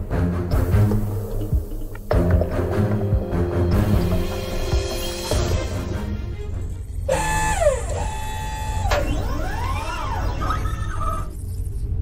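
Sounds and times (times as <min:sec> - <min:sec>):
electronic sci-fi tones: 0:07.1 - 0:11.8.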